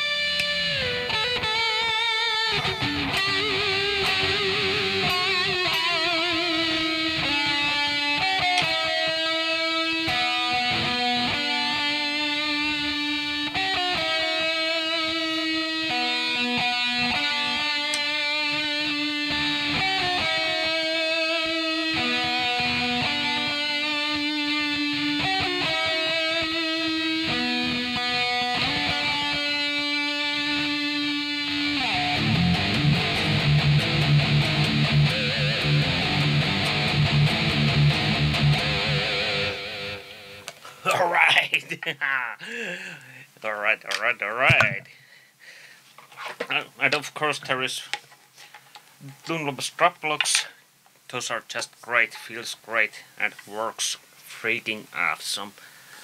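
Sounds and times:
distorted electric guitar: 0.0s - 43.0s, 43.7s - 44.9s.

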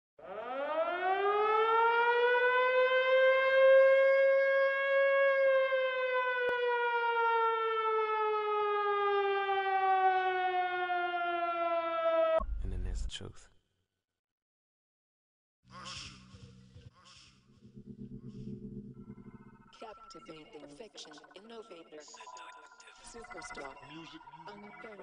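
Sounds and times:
air-raid siren wailing: 0.2s - 12.4s, 23.2s - 25.0s.

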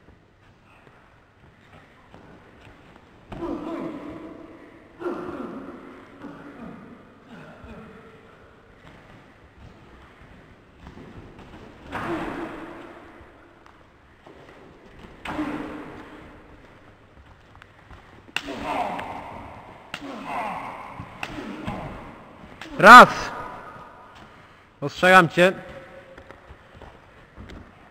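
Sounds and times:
person shouting: 18.4s - 21.7s, 22.6s - 23.9s.

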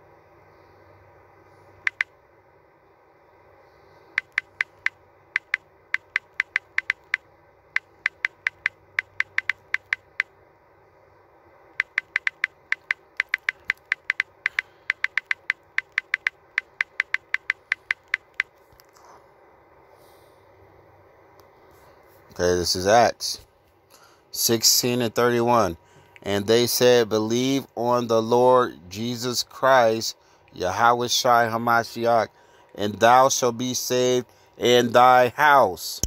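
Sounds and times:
phone keyboard clicks: 1.9s - 2.1s, 4.2s - 10.3s, 11.8s - 19.0s.

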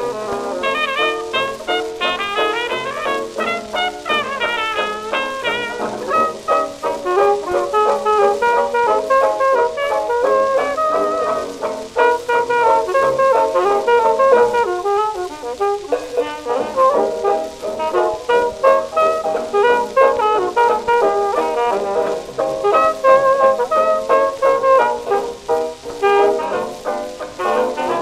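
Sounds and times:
jazz band on old record: 0.0s - 28.0s.

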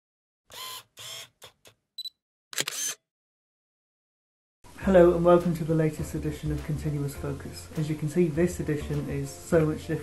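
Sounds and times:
camera mechanical bursts: 0.5s - 1.6s, 2.5s - 3.0s
small camera clicks: 2.5s - 3.0s.

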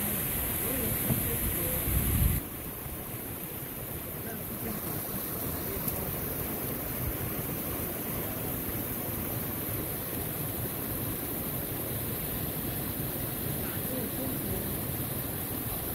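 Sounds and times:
mountain creek rushing over rocks: 0.0s - 15.9s.

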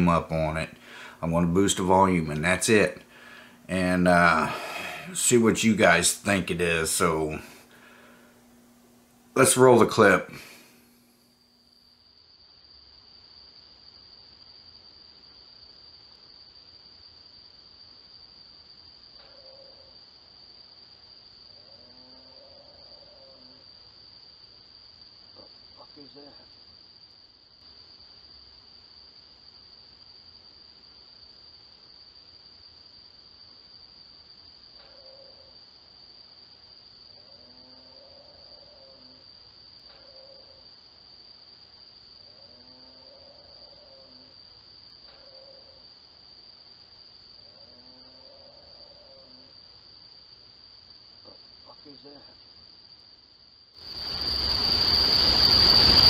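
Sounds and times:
crickets chirping: 0.0s - 56.0s
faint animal calls: 2.2s - 6.0s, 19.2s - 20.0s, 21.5s - 23.7s, 34.8s - 35.6s, 37.1s - 39.3s, 39.9s - 40.7s, 42.2s - 44.4s, 45.1s - 45.9s, 47.4s - 49.6s.

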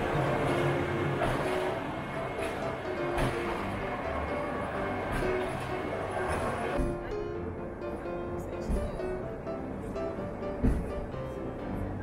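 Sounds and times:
electric railcar running: 0.0s - 12.0s.

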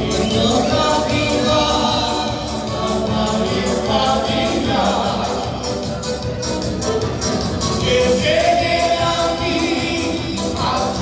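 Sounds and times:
person singing: 0.0s - 6.0s, 7.7s - 11.0s
dance band music: 0.0s - 11.0s.

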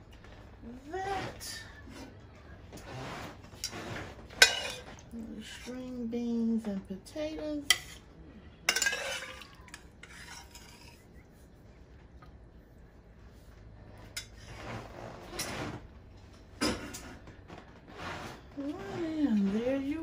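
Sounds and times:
utensil scraping and clinking cookware: 2.8s - 5.9s, 7.6s - 11.1s, 14.0s - 15.8s.

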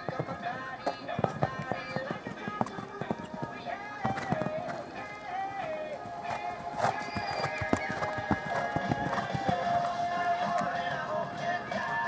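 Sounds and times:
horse hoofbeats on sand: 0.0s - 12.0s
pop music with singing: 0.0s - 12.0s.

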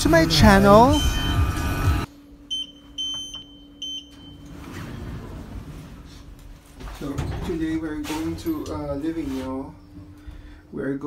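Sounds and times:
high electronic keypad beeps: 0.9s - 1.5s, 2.5s - 4.2s.

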